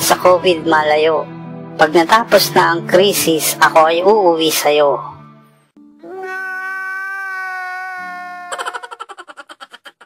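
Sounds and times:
quiet background music: 0.0s - 10.0s
man wailing and sobbing: 6.0s - 10.0s.

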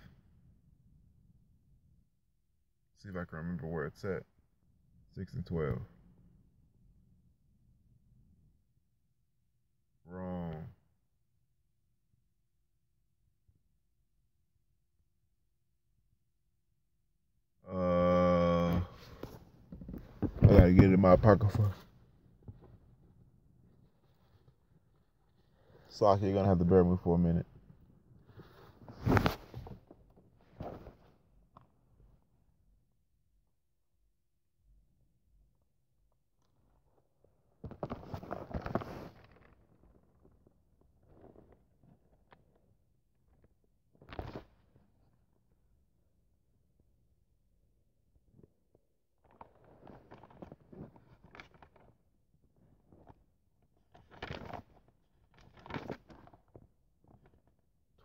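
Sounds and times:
rustling and handling noises: 18.8s - 26.4s, 27.5s - 31.8s, 36.5s - 45.3s, 49.2s - 57.8s
clothing rustling: 28.3s - 29.9s.

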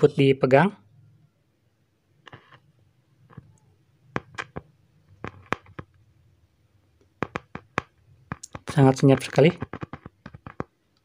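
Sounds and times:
loudspeaker clicks and crackles: 4.2s - 6.0s, 7.1s - 10.8s.

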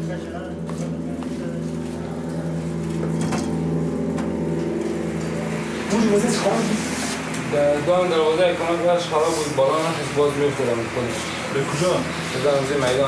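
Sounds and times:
low machine hum: 0.0s - 13.0s.

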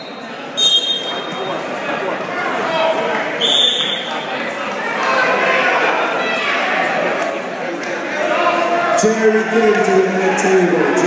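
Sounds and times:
referee's whistle blasts: 0.0s - 1.6s, 3.4s - 4.4s
spectators shouting: 0.0s - 11.0s.

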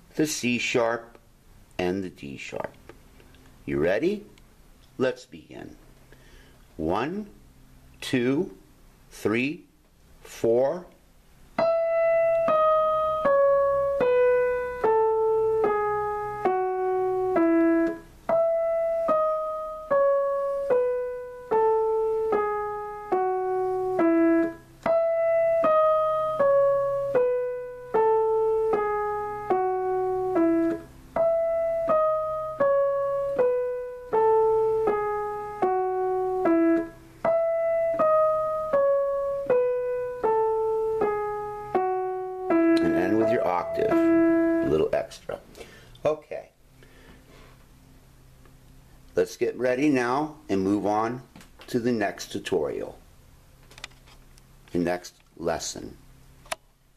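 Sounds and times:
digital piano descending scale: 11.6s - 45.4s.

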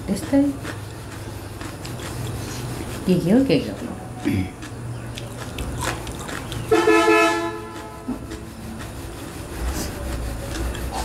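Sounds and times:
vehicle horn honking: 6.7s - 8.0s.

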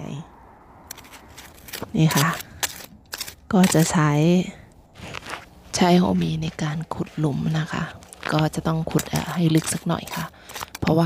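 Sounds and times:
hand hoe scraping sandy soil: 0.9s - 11.0s
woman speaking: 1.9s - 2.4s, 3.5s - 4.6s, 5.7s - 11.0s.

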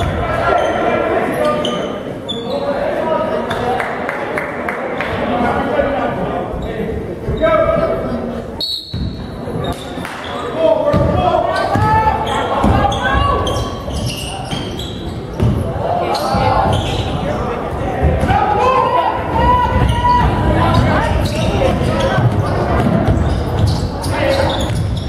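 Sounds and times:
voices echoing in gym: 0.0s - 25.0s
basketball bouncing on wooden floor: 15.3s - 15.6s.

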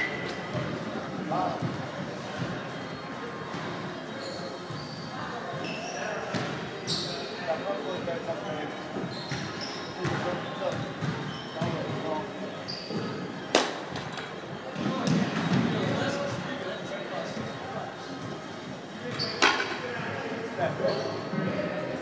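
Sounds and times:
baseball bat cracking ball: 13.5s - 14.0s.

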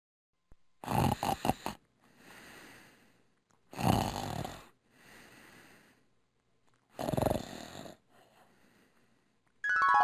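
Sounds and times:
man snoring: 0.8s - 1.8s, 3.7s - 4.8s, 7.0s - 8.1s.

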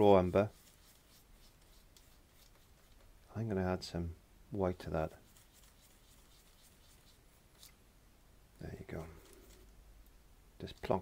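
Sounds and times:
paintbrush scrubbing on palette: 0.0s - 3.1s, 5.1s - 7.8s.

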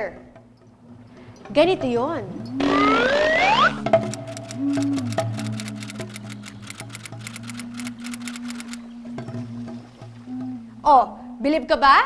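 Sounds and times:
held low notes: 0.0s - 11.8s
ticking clicks in music: 4.0s - 8.9s.

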